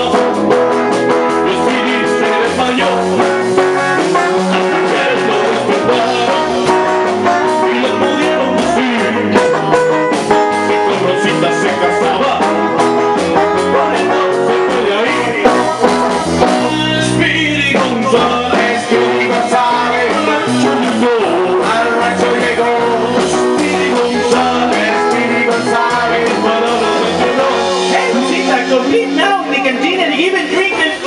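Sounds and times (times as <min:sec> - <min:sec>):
rock and roll band playing: 0:00.0 - 0:31.0.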